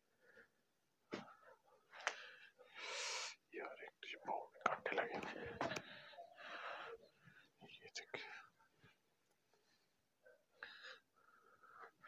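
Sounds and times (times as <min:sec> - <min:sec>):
man whispering: 0:03.2 - 0:09.0.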